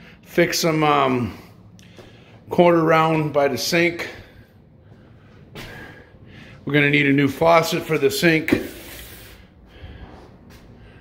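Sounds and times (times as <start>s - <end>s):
person breathing: 1.3s - 2.5s, 4.0s - 6.7s, 8.6s - 11.0s.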